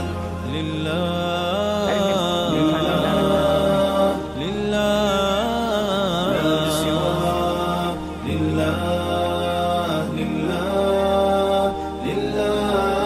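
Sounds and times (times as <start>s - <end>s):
person singing ornamented notes: 0.0s - 13.0s
steady low vocal drone: 0.0s - 13.0s.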